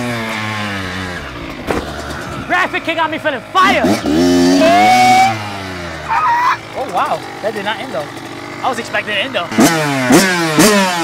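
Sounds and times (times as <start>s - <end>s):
dirt bike engine revving down: 0.0s - 11.0s.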